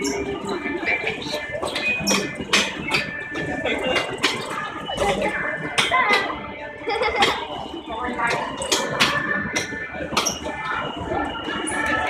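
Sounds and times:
background music: 0.0 - 12.0
indistinct voices: 0.0 - 12.0.

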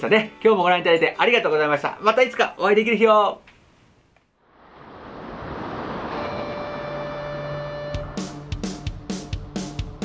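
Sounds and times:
ocean surf rushing: 4.5 - 8.5.

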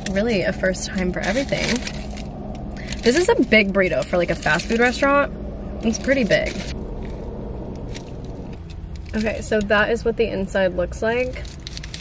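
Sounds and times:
car cabin rumble: 0.0 - 11.4.

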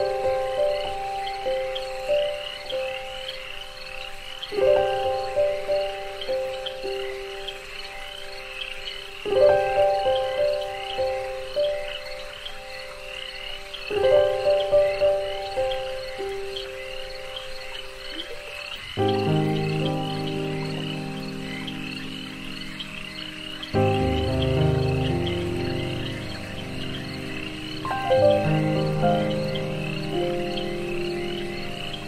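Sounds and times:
ambient music with held chords: 0.0 - 32.0
frogs calling: 0.0 - 32.0.

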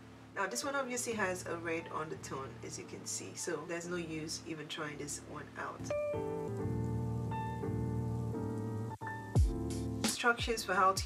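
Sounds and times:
held synth chords: 5.9 - 10.1.

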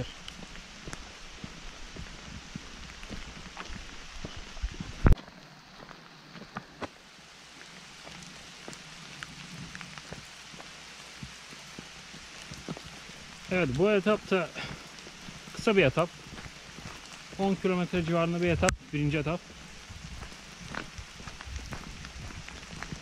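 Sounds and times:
steady rain falling: 0.0 - 23.0.

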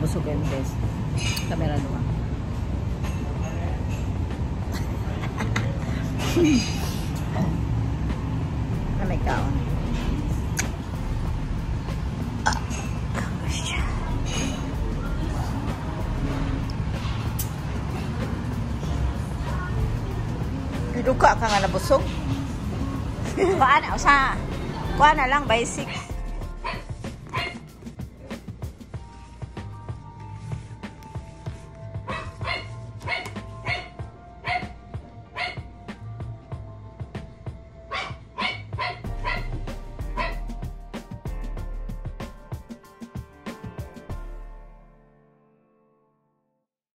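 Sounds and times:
background music: 0.0 - 46.2
low rumble: 7.3 - 27.4
dog barking: 25.8 - 27.6, 32.1 - 34.8, 35.4 - 35.6, 37.9 - 39.5, 40.2 - 40.4.

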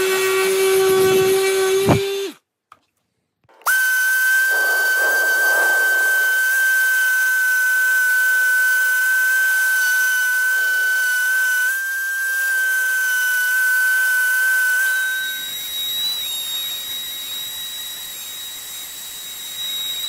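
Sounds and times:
orbital sander whining: 3.7 - 20.0.

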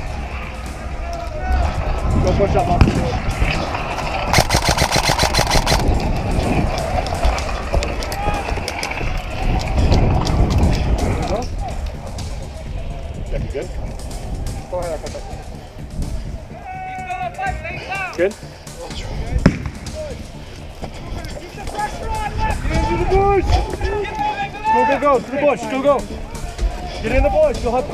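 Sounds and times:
airsoft rifle full-auto burst: 4.3 - 5.8.

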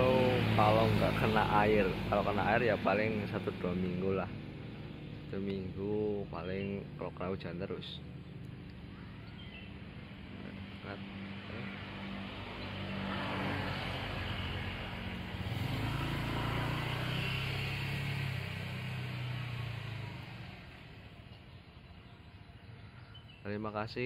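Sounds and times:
vehicle engine passing by: 0.0 - 5.8, 9.7 - 21.3.

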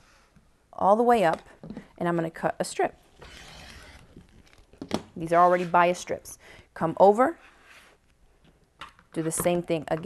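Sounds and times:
rotary cutter slicing fabric: 3.2 - 4.2.

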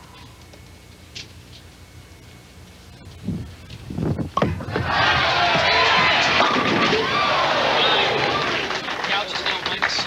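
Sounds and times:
bowling ball crashing into pins: 4.4 - 7.2
crowd cheering and shouting: 4.6 - 8.8.

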